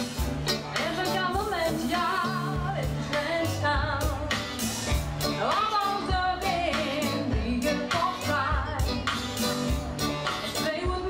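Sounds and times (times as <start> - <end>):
electric and acoustic guitars: 0.0 - 11.0
steady drum beat: 0.0 - 11.0
woman singing: 0.7 - 4.6, 5.2 - 11.0.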